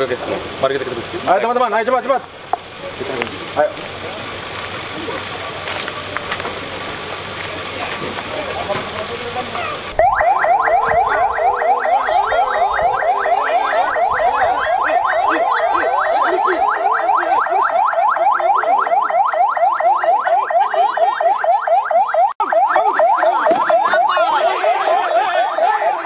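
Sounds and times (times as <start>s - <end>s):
police siren yelping: 2.8s - 26.0s.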